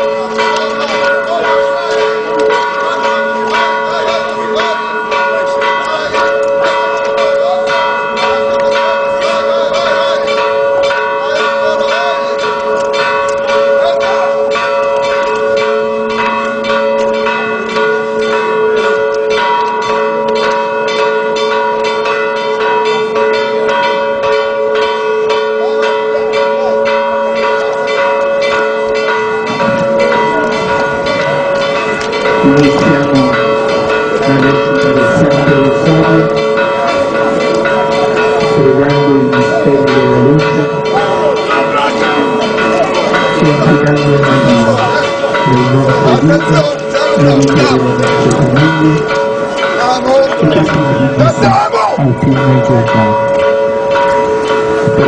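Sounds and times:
voices: 0:00.0 - 0:15.6, 0:29.9 - 0:53.5
church bells pealing: 0:00.0 - 0:55.0.

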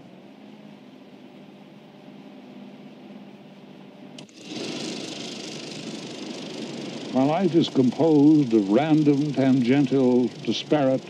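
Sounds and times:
film projector running: 0:04.1 - 0:11.0.

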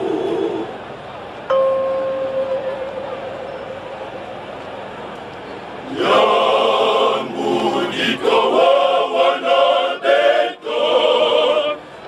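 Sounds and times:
male choir singing: 0:00.0 - 0:00.7, 0:05.8 - 0:11.9.

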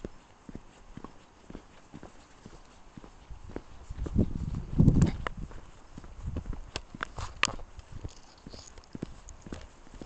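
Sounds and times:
footsteps on pavers and gravel: 0:00.0 - 0:10.0.

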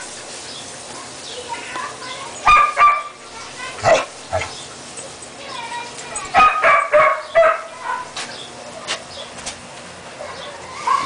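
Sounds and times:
puppies yipping and barking: 0:00.0 - 0:09.4, 0:10.1 - 0:11.0.

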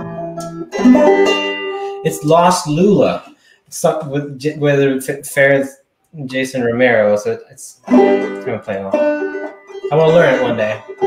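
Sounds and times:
banjo plucked chord ringing: 0:00.0 - 0:02.1, 0:07.9 - 0:11.0.

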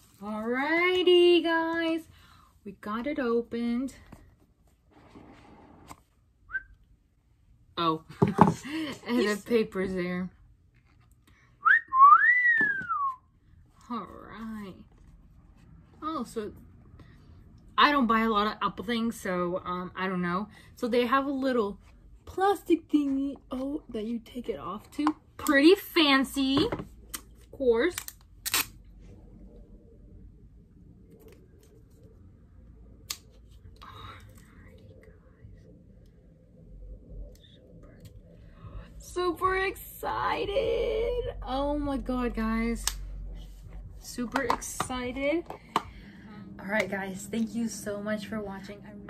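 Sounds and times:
person whistling: 0:11.6 - 0:13.2.

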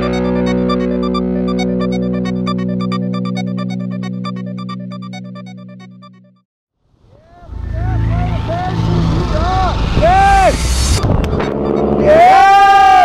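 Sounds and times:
person shouting with joy: 0:12.0 - 0:13.0
person whooping: 0:12.0 - 0:13.0.

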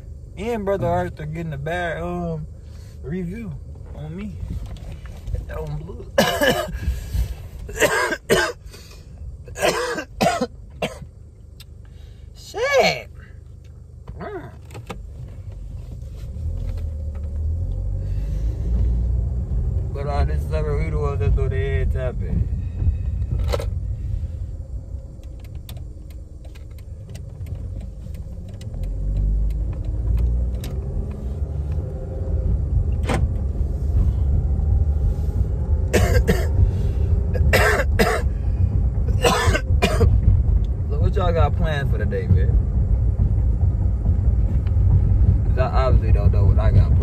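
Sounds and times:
car engine and road noise: 0:00.0 - 0:47.0.

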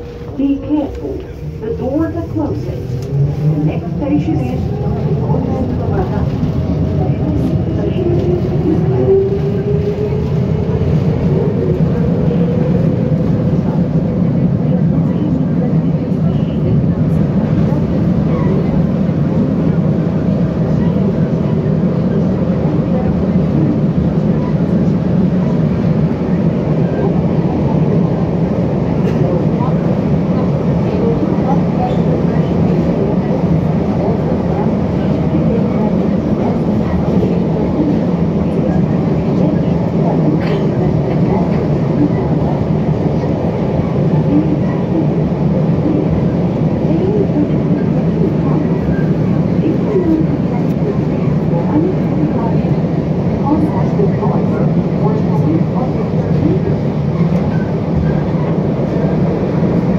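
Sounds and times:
train running rumble: 0:00.0 - 0:59.9.

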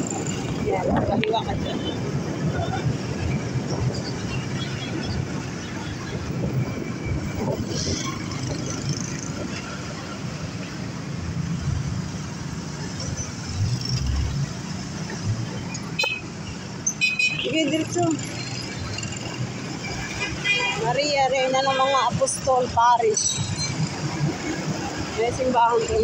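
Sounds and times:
other motorcycles and cars: 0:00.0 - 0:26.0
road and wind noise: 0:00.0 - 0:26.0.

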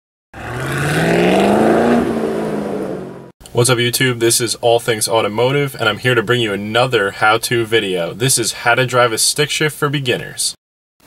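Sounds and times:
car engine revving: 0:00.4 - 0:03.3.

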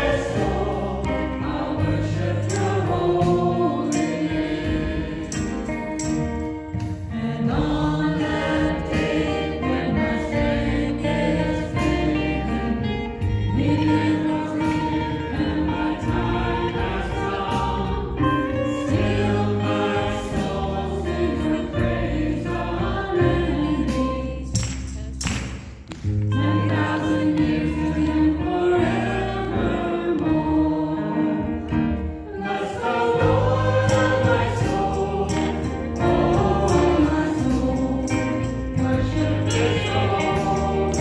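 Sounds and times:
people singing: 0:00.0 - 0:25.1, 0:26.3 - 0:41.0.

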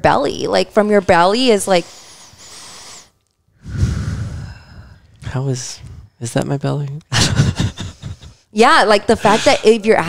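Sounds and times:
person taking deep breath: 0:01.9 - 0:05.2
air rumble on microphone: 0:03.6 - 0:06.2.

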